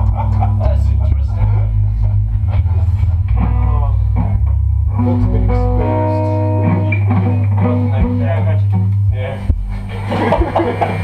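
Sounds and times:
heavy bass: 0.0s - 11.0s
rock band playing: 0.0s - 11.0s.

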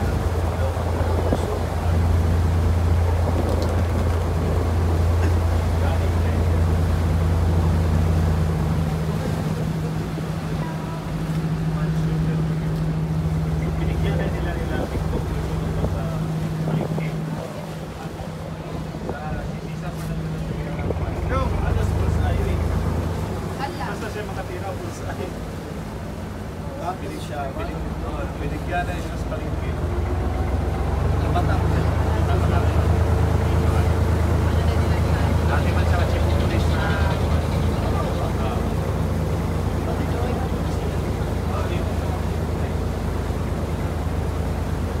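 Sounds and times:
wind noise: 0.0s - 5.2s
boat engine drone: 0.0s - 45.0s
water noise: 0.0s - 45.0s.

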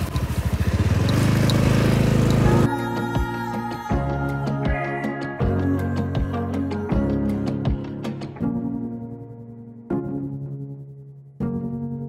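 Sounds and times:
small motorcycle engine running: 0.0s - 2.7s.

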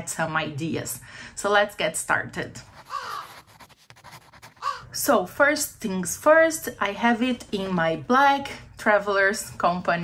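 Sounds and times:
crow cawing: 2.9s - 3.4s, 4.6s - 4.9s.

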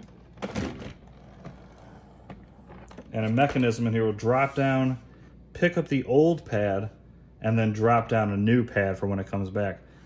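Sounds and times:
robot mop scraping rumble: 0.0s - 5.0s.

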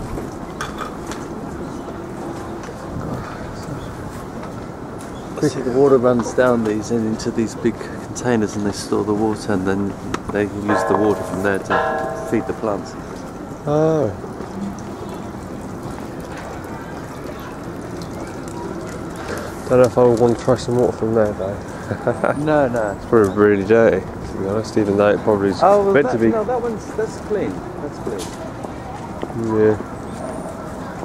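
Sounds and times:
water running into stone basin: 10.7s - 21.8s.

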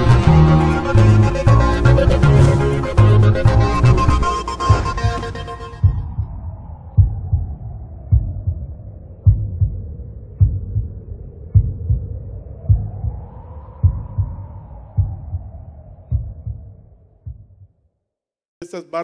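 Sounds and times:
heartbeat double thump: 1.9s - 17.7s.

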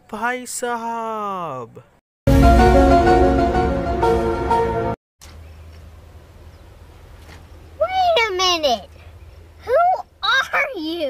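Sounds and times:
low hum and hiss: 5.2s - 11.0s.

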